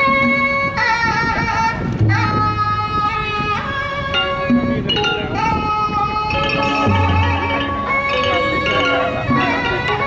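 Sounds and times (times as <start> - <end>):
reedy wind melody: 0.0 - 10.0.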